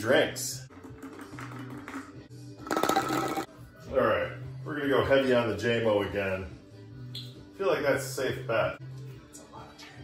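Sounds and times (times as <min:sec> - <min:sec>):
background folk music: 0:00.0 - 0:10.0.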